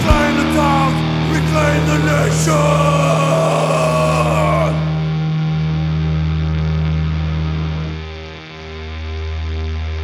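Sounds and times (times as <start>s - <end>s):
distorted punk guitar music: 0.0s - 10.0s.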